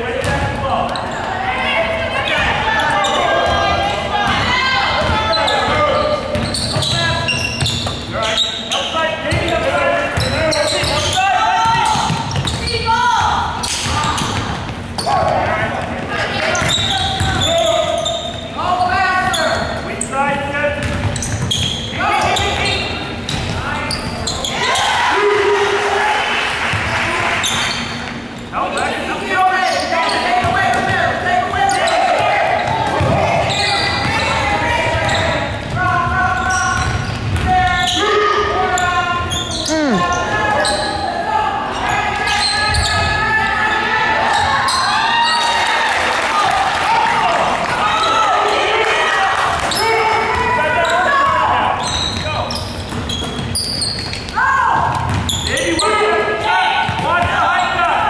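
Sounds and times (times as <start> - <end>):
basketballs bouncing on wooden floor: 0.2 - 1.4, 3.4 - 8.1, 9.3 - 17.7, 20.3 - 22.7, 32.2 - 37.6, 50.3 - 55.5, 56.9 - 57.4.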